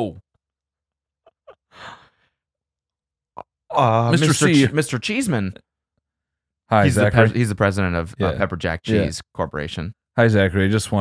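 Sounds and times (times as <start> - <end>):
person exhaling: 1.7 - 2.2.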